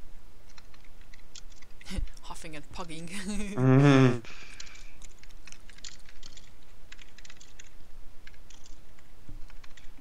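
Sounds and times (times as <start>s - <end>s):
typing on computer keyboard: 0.5s - 1.7s, 4.5s - 10.0s.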